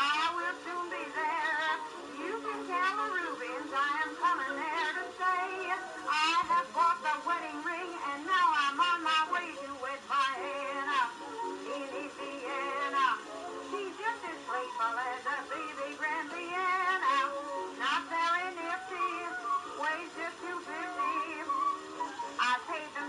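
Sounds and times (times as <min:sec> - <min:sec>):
woman singing with vibrato: 0:00.0 - 0:23.0.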